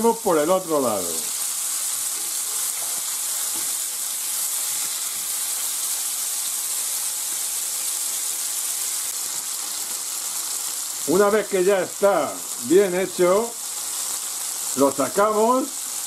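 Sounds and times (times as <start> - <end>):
meat sizzling in a frying pan: 0.0 - 16.0.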